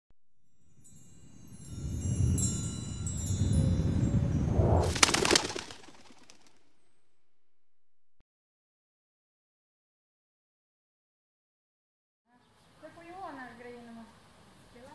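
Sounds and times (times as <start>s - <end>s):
low rumble: 0.3s - 5.0s
shimmering chime-like tinkling: 0.5s - 5.0s.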